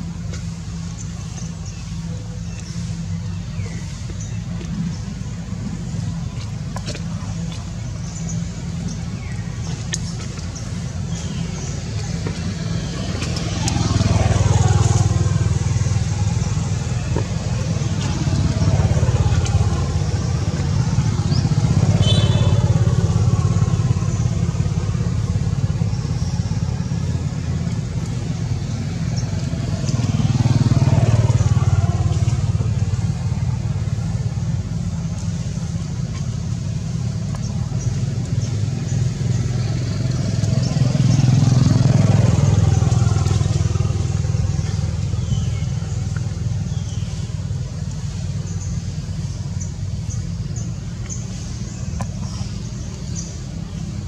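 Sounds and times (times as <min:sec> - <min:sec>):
traffic passing by: 0:00.0 - 0:54.0.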